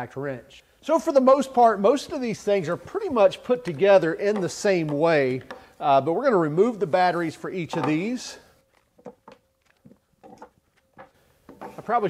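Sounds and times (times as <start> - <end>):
tools set down on workbench: 7.7 - 8.1, 10.2 - 11.9.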